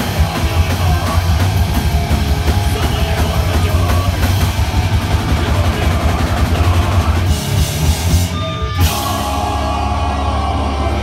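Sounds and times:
bass guitar: 0:00.0 - 0:11.0
distorted guitars: 0:00.0 - 0:11.0
rapid drumming: 0:00.0 - 0:11.0.

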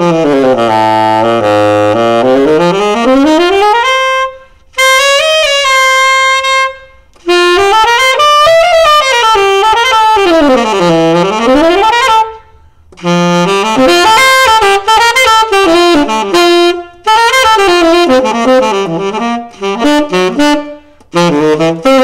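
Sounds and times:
tenor saxophone solo: 0:00.0 - 0:22.0.

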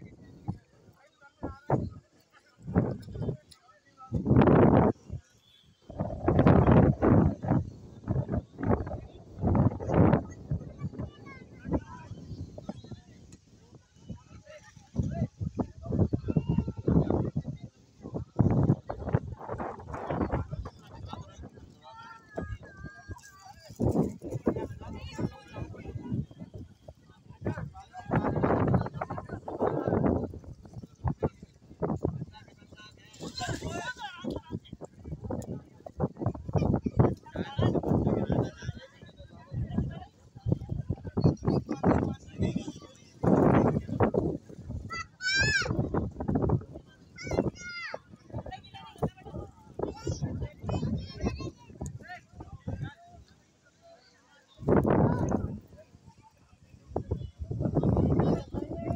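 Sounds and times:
people talking indistinctly: 0:00.0 - 0:58.9.

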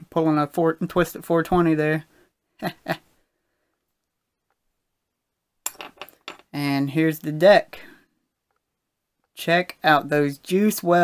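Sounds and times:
man chuckling: 0:02.6 - 0:03.1.

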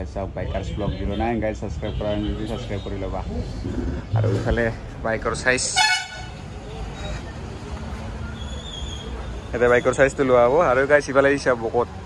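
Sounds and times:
rumble of passing vehicles: 0:00.0 - 0:12.0.

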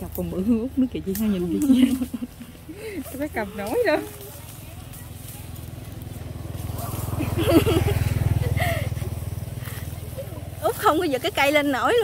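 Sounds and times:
small engine passing by: 0:00.0 - 0:12.0.

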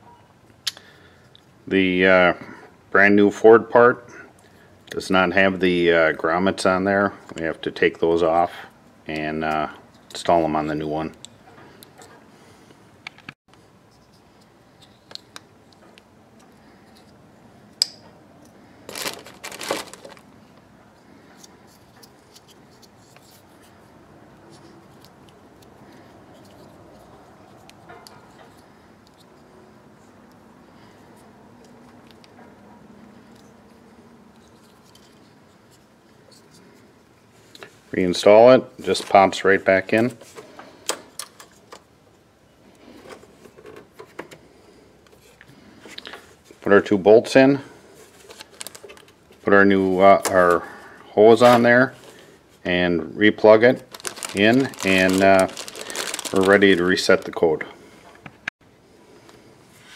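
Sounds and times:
hands rustling: 0:18.8 - 0:20.7, 0:53.8 - 0:57.5
crinkly scraping and rustling: 0:18.8 - 0:29.4, 0:47.4 - 0:50.6, 0:53.4 - 0:57.6.

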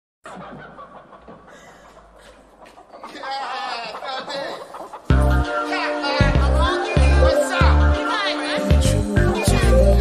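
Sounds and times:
person laughing: 0:01.3 - 0:05.1.

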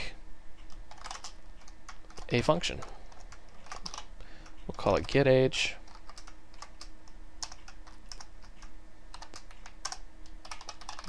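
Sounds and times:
keyboard keystroke clicks: 0:05.9 - 0:11.0.

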